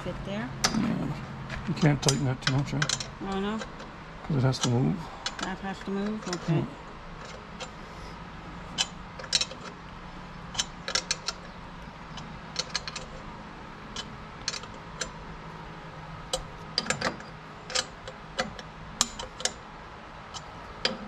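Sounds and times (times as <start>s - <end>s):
wrench clicking on bolt: 10.5s - 11.4s, 16.3s - 19.6s.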